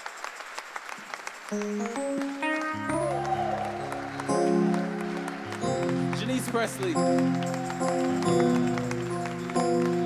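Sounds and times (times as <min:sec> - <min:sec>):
applause: 0:00.0 - 0:10.0
electric keyboard chords: 0:01.5 - 0:10.0.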